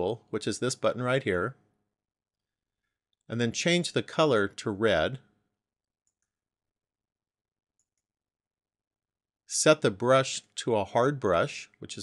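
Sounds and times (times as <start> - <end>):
faint computer mouse clicks: 6.0 - 6.4, 7.8 - 8.1.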